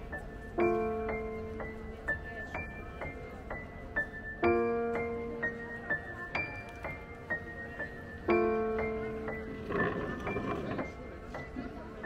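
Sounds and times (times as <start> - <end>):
slow piano notes: 0.0 - 12.0.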